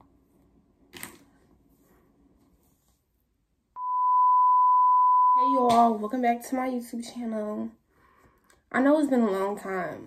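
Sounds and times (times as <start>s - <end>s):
steady electronic beep: 3.8s - 5.6s
woman speaking: 5.3s - 7.8s, 8.7s - 10.0s.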